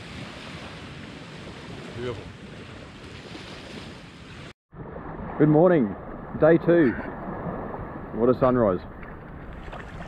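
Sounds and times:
shoreline ambience: 0.0s - 10.0s
small waves washing on shore: 0.0s - 10.0s
wind: 0.0s - 10.0s
wind on microphone: 0.0s - 10.0s.

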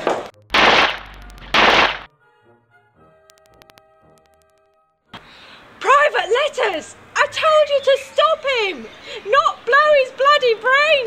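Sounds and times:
gunshots: 0.0s - 2.1s.

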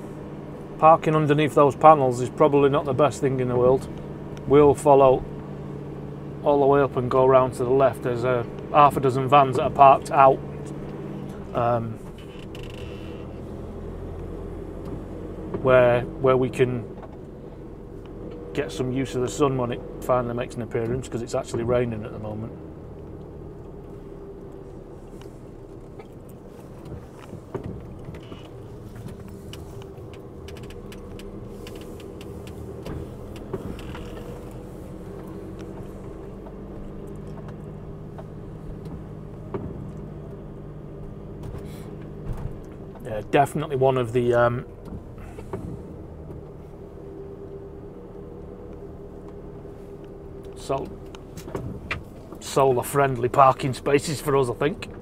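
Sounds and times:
van engine and road rumble: 0.0s - 55.0s
cab creak: 9.5s - 15.7s, 23.0s - 43.2s, 44.6s - 52.7s
light clicks and ticks: 22.9s - 40.4s.

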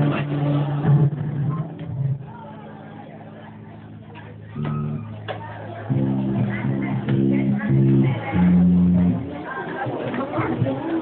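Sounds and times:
faint voices: 0.0s - 11.0s
music over pa system: 0.0s - 11.0s.

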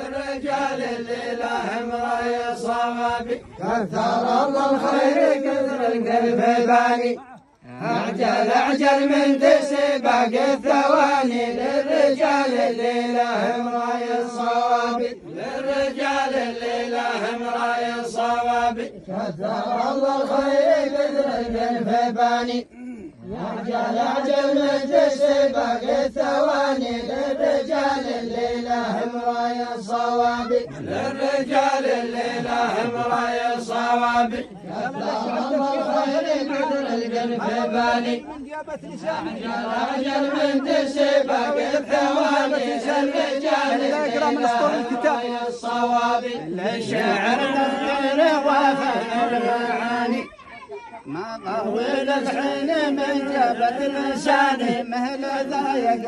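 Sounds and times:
men chanting in unison: 0.0s - 50.3s, 51.1s - 56.0s.

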